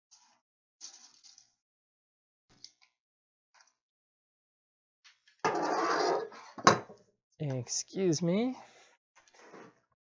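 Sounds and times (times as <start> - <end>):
wood scraping on wood: 5.5 - 6.4.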